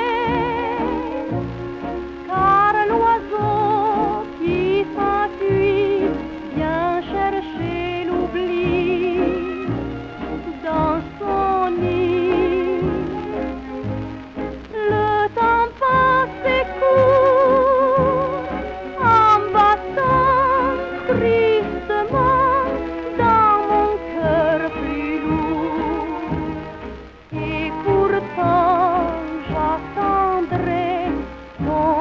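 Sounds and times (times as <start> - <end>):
old record instrumental music: 0.0 - 32.0.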